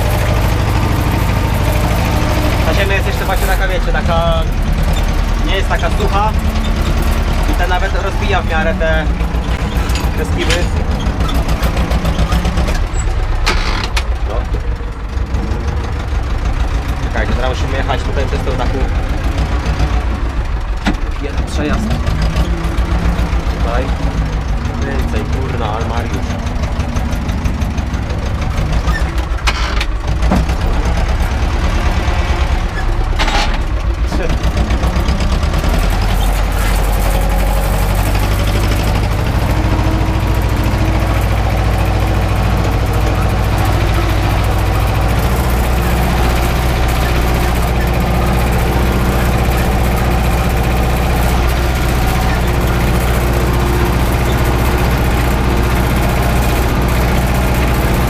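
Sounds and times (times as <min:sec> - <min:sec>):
tractor diesel engine running: 0:00.0 - 0:58.0.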